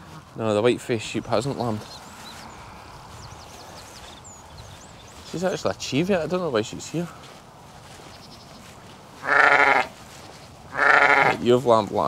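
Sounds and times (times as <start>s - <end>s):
sheep bleating: 9.2s - 10.0s, 10.7s - 11.4s.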